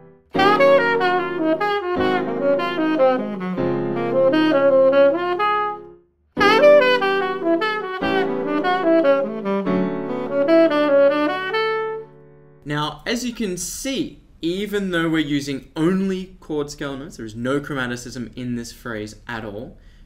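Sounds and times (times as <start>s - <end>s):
held backing chords: 0.0s - 12.8s
saxophone jazz phrase: 0.3s - 12.2s.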